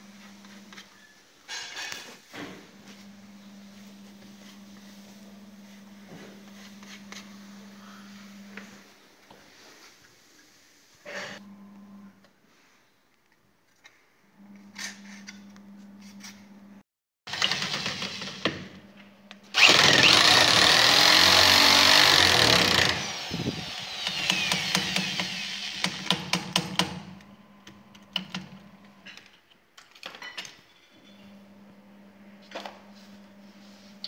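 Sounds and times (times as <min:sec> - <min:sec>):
power drill driving screw: 0:17.3 - 0:18.6, 0:19.5 - 0:27.0
drill clicks: 0:19.5 - 0:27.0.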